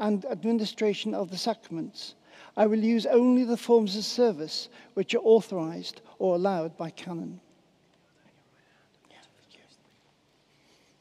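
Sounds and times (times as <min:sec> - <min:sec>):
faint whispering: 0:07.9 - 0:11.0.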